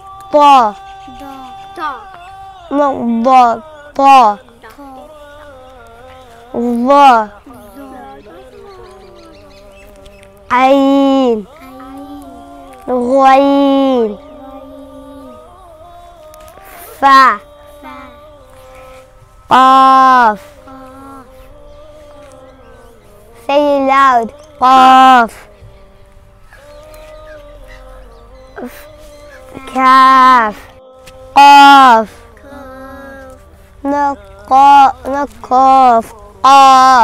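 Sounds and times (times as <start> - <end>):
faint sung vocal: 0.0 - 37.0.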